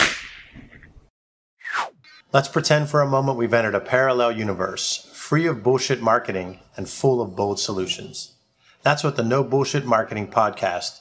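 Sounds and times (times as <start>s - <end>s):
sharp crack: 0.0s - 0.9s
whoosh falling in pitch: 1.6s - 2.2s.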